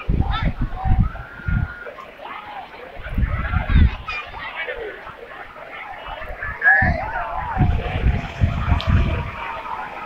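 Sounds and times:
crowd chatter: 0:00.0 - 0:10.0
wind rumbling on microphone: 0:00.0 - 0:10.0.

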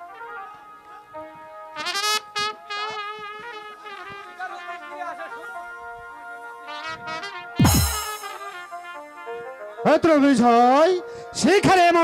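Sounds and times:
brass band playing: 0:01.8 - 0:09.7
loud crash with falling tone: 0:07.6 - 0:08.7.

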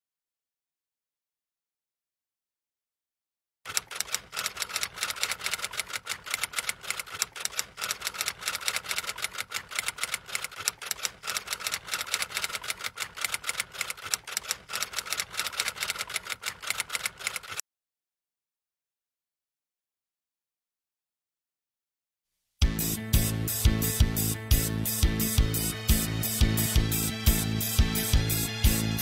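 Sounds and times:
typewriter key clicks: 0:03.7 - 0:17.6.

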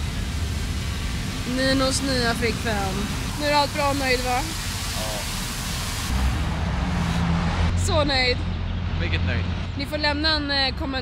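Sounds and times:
rushing hiss: 0:00.0 - 0:07.4
engine hum: 0:00.0 - 0:11.0
street traffic rumble: 0:00.0 - 0:11.0.

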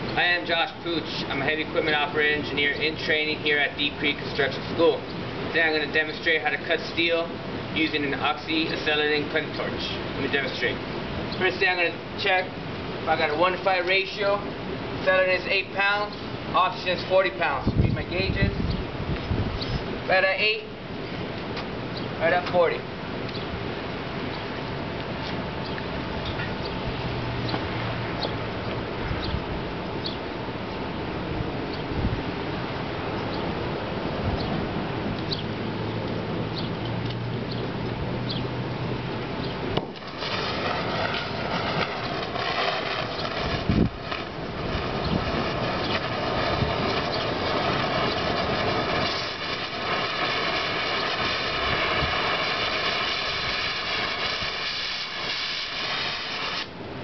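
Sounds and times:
faint outdoor background noise: 0:00.0 - 0:57.0
sharp flame pop: 0:39.7 - 0:56.7
cutting torch gas hiss: 0:39.9 - 0:56.8.

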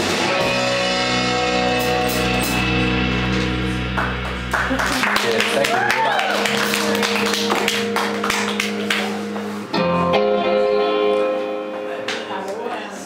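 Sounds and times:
final guitar chord ringing: 0:00.0 - 0:12.4
live rock band playing: 0:00.0 - 0:12.6.

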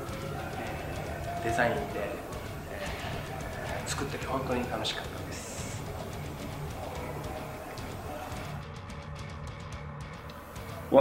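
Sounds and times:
man talking: 0:01.3 - 0:05.9.

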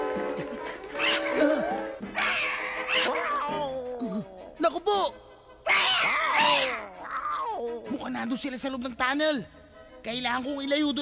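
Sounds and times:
cartoon cat yowling: 0:01.0 - 0:04.2, 0:05.7 - 0:07.6.

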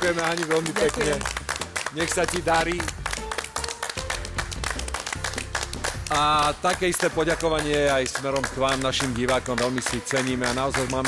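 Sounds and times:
applause: 0:00.0 - 0:11.0
background music with bass line: 0:00.0 - 0:11.0.

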